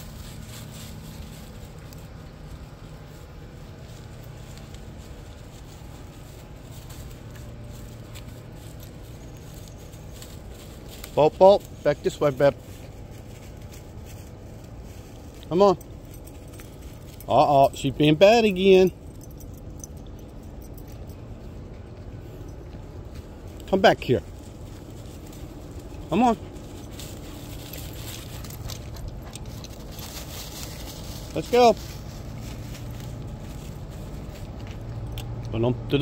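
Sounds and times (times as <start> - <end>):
footsteps crunching dry leaves: 0.0 - 18.5, 22.0 - 35.4
outdoor background noise: 0.0 - 36.0
steady low rumble: 0.0 - 36.0.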